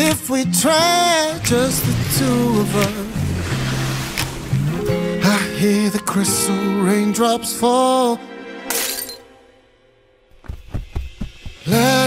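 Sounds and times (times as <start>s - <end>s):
person singing: 0.0s - 3.3s, 4.9s - 8.5s, 11.6s - 12.0s
glass shattering crash: 8.7s - 9.3s.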